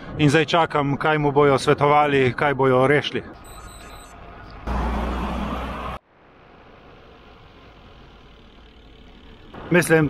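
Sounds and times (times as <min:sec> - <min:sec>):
traffic: 0:00.0 - 0:10.0
car engine hum: 0:03.4 - 0:10.0.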